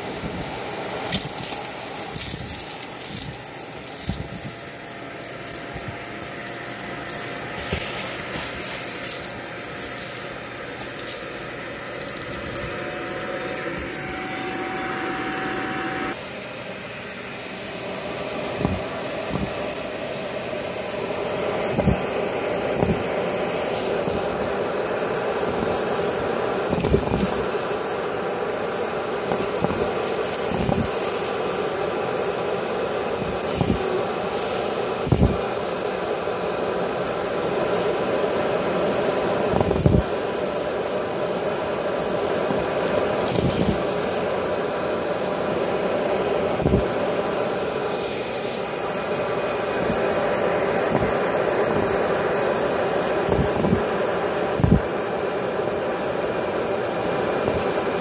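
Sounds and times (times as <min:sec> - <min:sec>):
vacuum cleaner running: 0:00.0 - 0:58.0
debris knocking in vacuum wand: 0:01.0 - 0:16.1, 0:18.5 - 0:19.8, 0:21.6 - 0:24.3.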